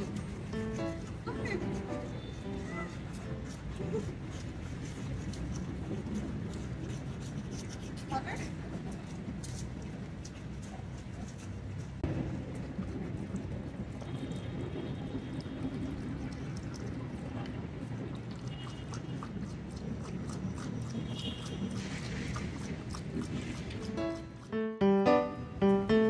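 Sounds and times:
dog paws ticking on stone: 0:00.0 - 0:13.9, 0:19.0 - 0:24.6
dog drinking water: 0:00.0 - 0:24.6.

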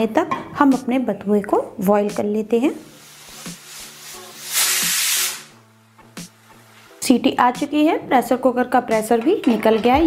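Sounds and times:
pressure cooker whistle hissing: 0:03.2 - 0:05.6.

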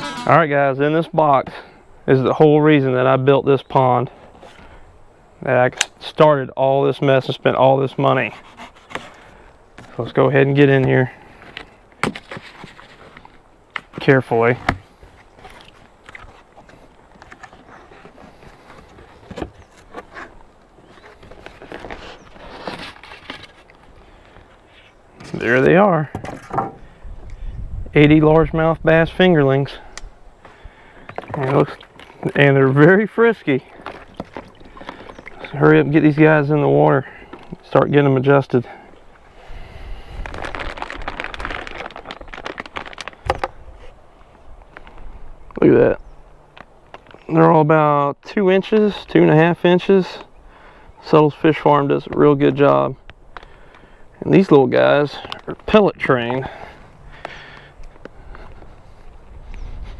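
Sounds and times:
cardboard box rustling and scraping: 0:17.2 - 0:23.7
plastic bag crinkling: 0:39.9 - 0:43.6.

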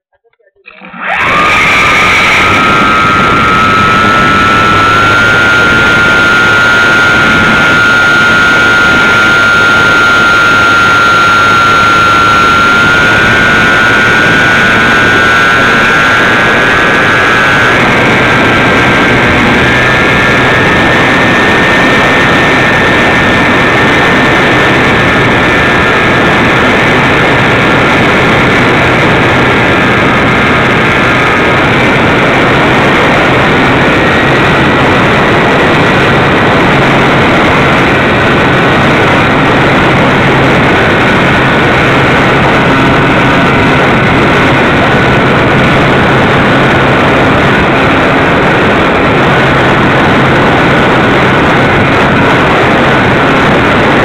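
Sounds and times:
model airplane motor and propeller: 0:00.3 - 0:54.0.

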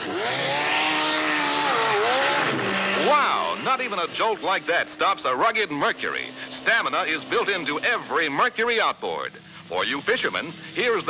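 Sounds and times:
outboard motor running fast: 0:00.0 - 0:11.0.

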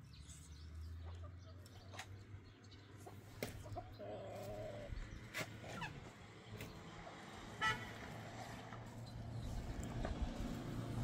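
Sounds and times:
chickens clucking: 0:01.0 - 0:02.2, 0:02.8 - 0:06.8.

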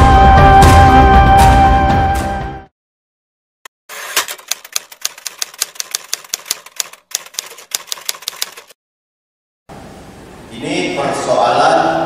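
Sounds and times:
typewriter key clicks: 0:04.1 - 0:08.8.

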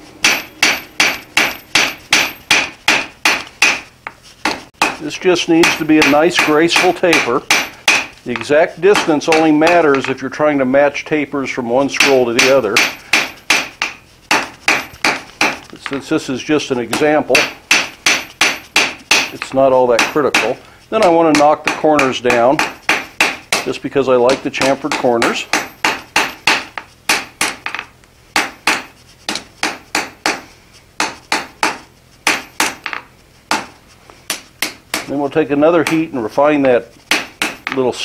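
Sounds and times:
hammer striking iron on anvil: 0:00.2 - 0:10.2, 0:11.9 - 0:16.0, 0:16.9 - 0:33.7, 0:34.3 - 0:35.1, 0:35.8 - 0:36.2, 0:37.1 - 0:38.0.

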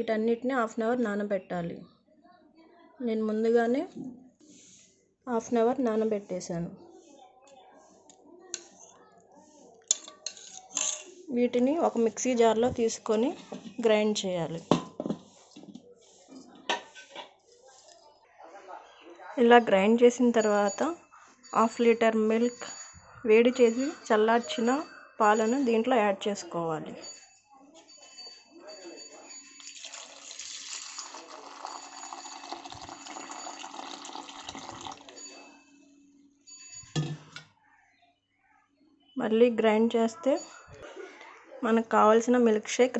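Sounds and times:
spoon clinking against steel bowl: 0:08.5 - 0:08.9, 0:09.9 - 0:11.1, 0:29.3 - 0:35.7, 0:36.5 - 0:37.5.

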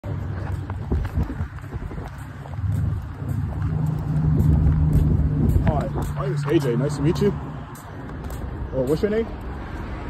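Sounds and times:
vehicle engine humming: 0:00.0 - 0:10.0.

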